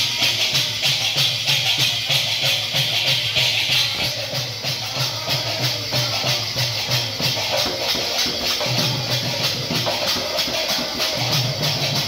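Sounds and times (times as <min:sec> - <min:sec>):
barrel hand drum playing: 0:00.0 - 0:12.0.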